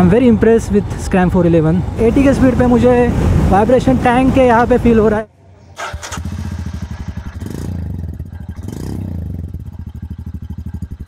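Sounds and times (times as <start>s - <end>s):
motorcycle engine thumping: 5.8s - 11.0s.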